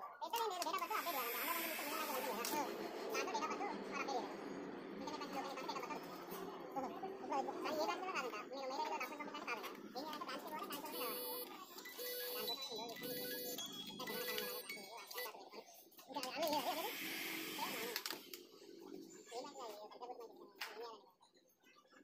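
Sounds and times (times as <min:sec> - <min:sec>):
background voices: 0:00.6 - 0:11.0
music: 0:00.8 - 0:22.0
loud noisy rush: 0:01.0 - 0:08.1.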